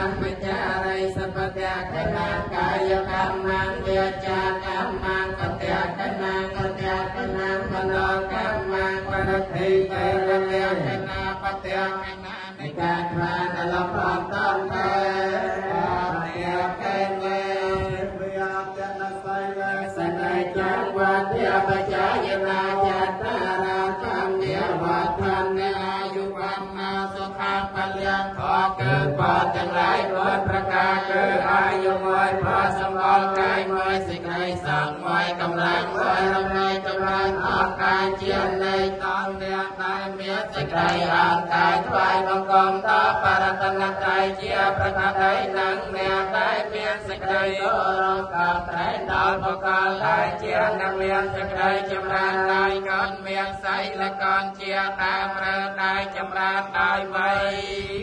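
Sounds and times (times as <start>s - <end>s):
voices chanting in monotone: 0.0s - 58.0s.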